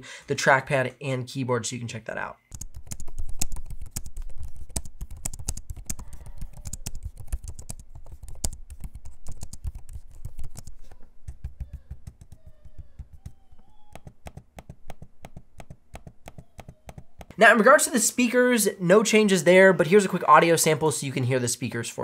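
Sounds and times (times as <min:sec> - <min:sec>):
laptop keyboard typing: 0:02.5 - 0:17.4
taps on trackpad: 0:02.5 - 0:17.4.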